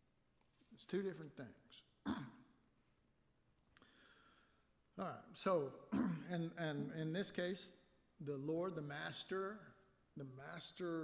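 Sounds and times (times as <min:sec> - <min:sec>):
man speaking into a microphone: 0:05.0 - 0:11.0.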